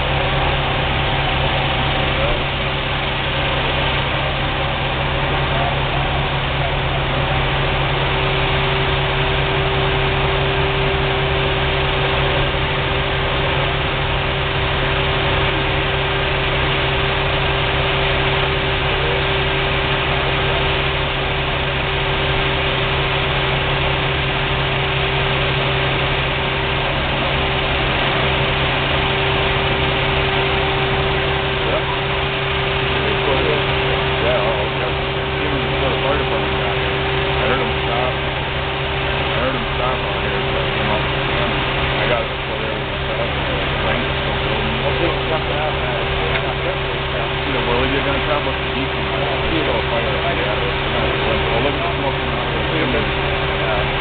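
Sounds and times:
diesel engines idling: 0.0 - 54.0.

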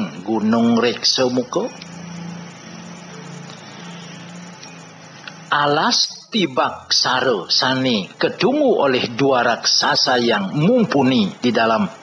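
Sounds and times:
even hiss: 0.0 - 12.0
steady low hum: 0.0 - 12.0.

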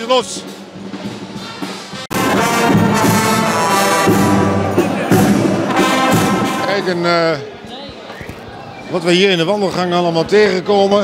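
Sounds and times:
loud brass band music: 0.0 - 7.5
crowd noise hum: 0.0 - 11.0.

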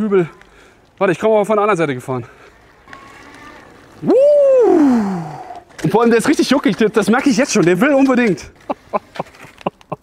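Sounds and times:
man whooping: 4.0 - 5.6.

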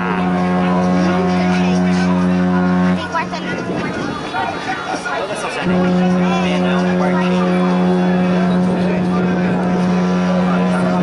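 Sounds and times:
ship horn low blast: 0.0 - 4.0, 5.6 - 11.0
faint voices: 0.0 - 11.0.

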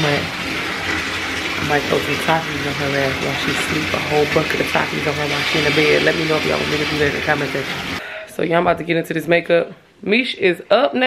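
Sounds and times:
bathtub tap running: 0.0 - 9.0.

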